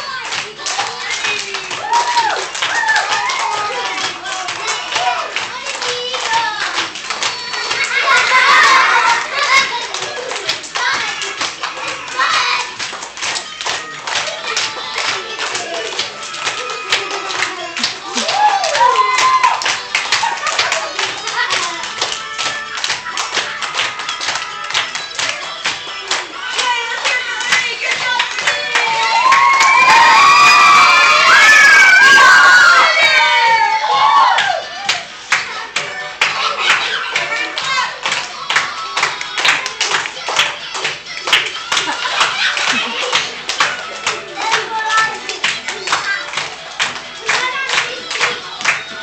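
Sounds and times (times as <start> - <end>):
children clapping in time: 0.0 - 33.2, 34.0 - 49.0
music playing: 0.0 - 49.0.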